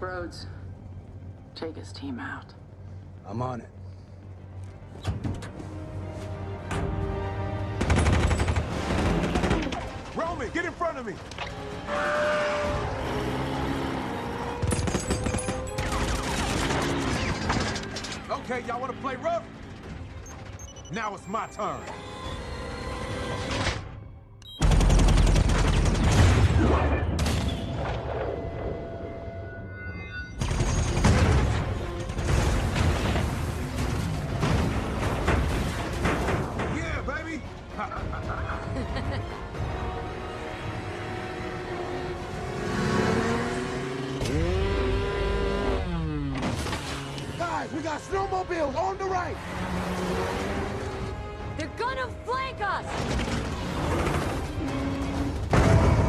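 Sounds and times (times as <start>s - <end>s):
dramatic music score: 0.0s - 56.0s
machine-gun fire: 7.8s - 9.7s, 24.6s - 26.6s
gunshots: 14.6s - 17.9s.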